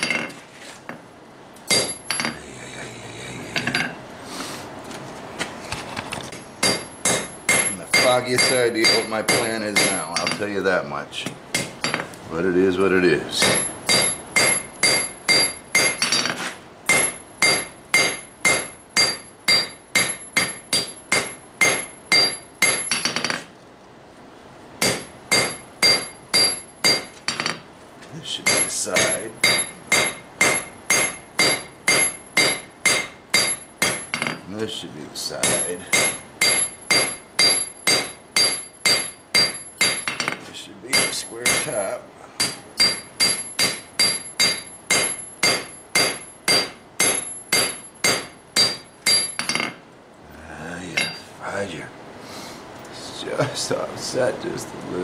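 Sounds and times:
hammer striking metal on anvil: 1.7 - 2.4, 6.6 - 10.5, 13.4 - 23.4, 24.8 - 27.6, 28.4 - 34.4, 35.4 - 49.8, 51.0 - 51.2.

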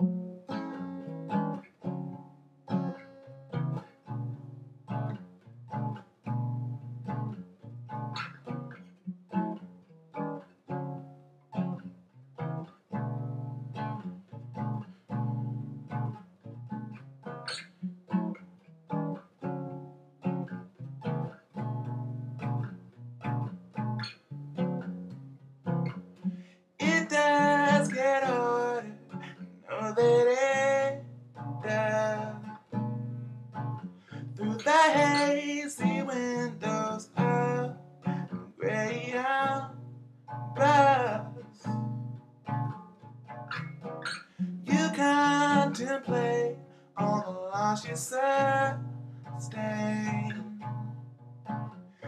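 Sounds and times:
acoustic guitar plucked notes: 0.0 - 52.0
man singing: 26.8 - 32.6, 34.2 - 39.8, 40.6 - 41.8, 44.7 - 48.8, 49.4 - 50.6.

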